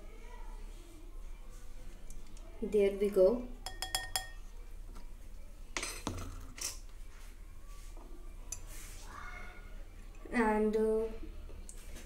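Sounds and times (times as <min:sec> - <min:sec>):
kitchen utensils knocking and scraping: 0:05.8 - 0:06.8.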